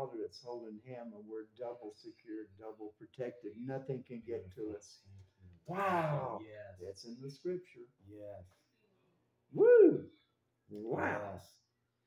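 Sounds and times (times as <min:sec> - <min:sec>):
man talking: 0:00.0 - 0:08.5, 0:10.7 - 0:11.5
man saying ooh: 0:05.7 - 0:07.0, 0:09.6 - 0:10.1, 0:10.8 - 0:11.4.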